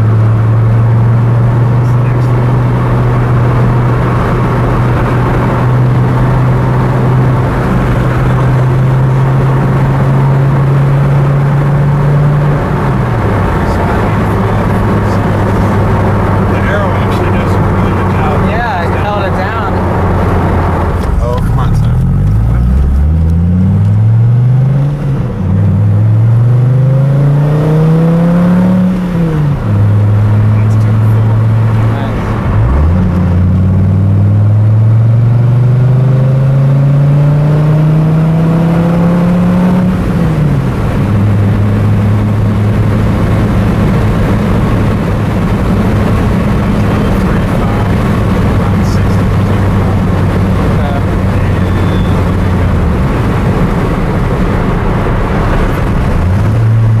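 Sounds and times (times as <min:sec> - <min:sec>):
car engine accelerating through gears: 0:00.0 - 0:57.0.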